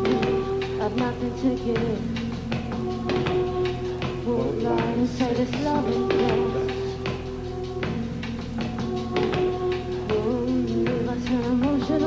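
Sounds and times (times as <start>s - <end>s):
keyboard and bass notes: 0.0s - 12.0s.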